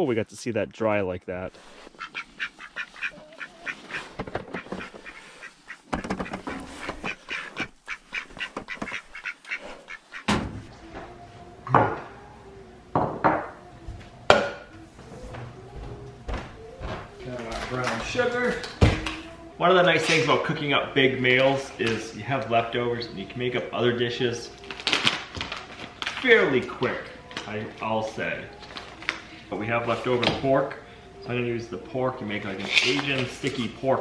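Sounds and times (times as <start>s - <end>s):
poultry calling: 1.7s - 10.4s.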